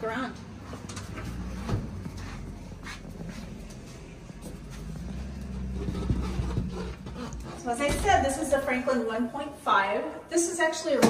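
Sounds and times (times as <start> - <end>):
footsteps: 0.3 - 8.9.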